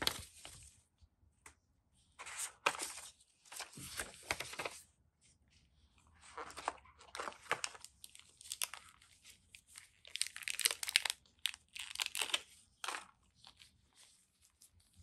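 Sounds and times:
plastic wrapping crinkling: 0:06.4 - 0:13.7.

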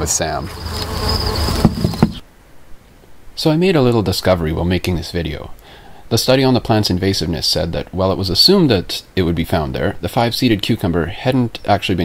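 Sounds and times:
crickets trilling: 0:00.0 - 0:02.2
rustling: 0:00.0 - 0:03.1.

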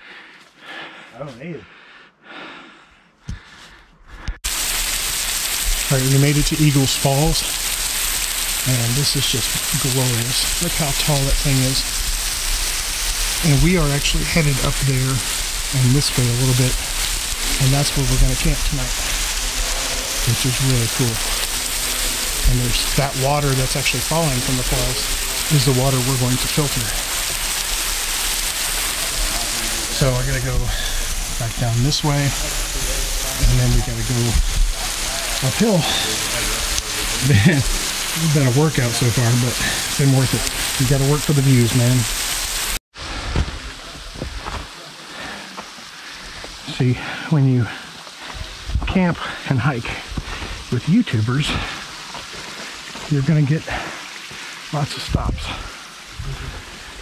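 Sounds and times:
waterfall splashing onto rocks: 0:04.4 - 0:57.0.

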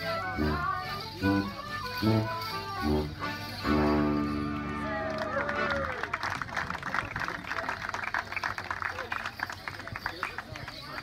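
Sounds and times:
people talking: 0:03.4 - 0:11.0
audience applause: 0:04.8 - 0:11.0.

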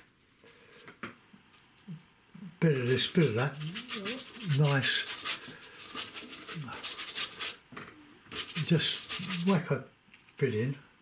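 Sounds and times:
bristle brush scrubbing paper: 0:02.8 - 0:07.6, 0:08.3 - 0:09.7.

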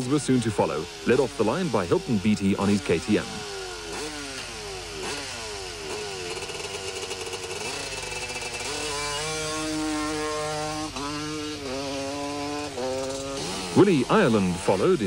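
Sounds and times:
motorcycle engines revving: 0:00.0 - 0:15.0.

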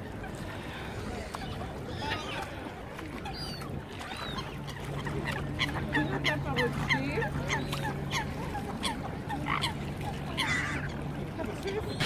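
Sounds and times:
waterbirds calling: 0:00.0 - 0:12.0.

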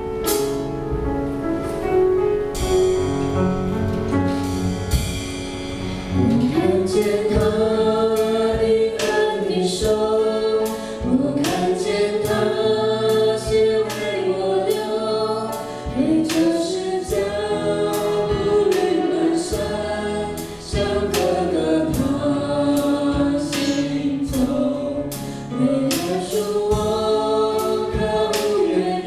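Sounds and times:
drum kit steady beat: 0:00.0 - 0:01.1, 0:02.5 - 0:29.0
acoustic guitar: 0:00.0 - 0:29.0
piano: 0:00.0 - 0:29.0
singers singing together: 0:06.2 - 0:29.0.

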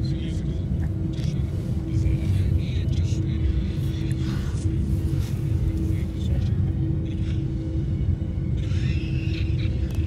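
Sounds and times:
airliner cabin rumble: 0:00.0 - 0:10.0
steady hum: 0:00.0 - 0:10.0.

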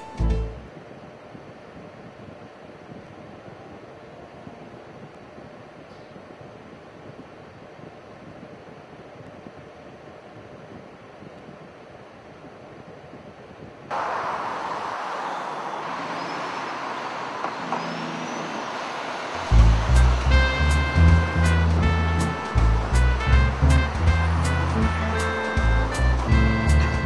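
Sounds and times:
highway traffic rush: 0:13.9 - 0:27.0
music with heavy bass beat: 0:19.5 - 0:27.0.

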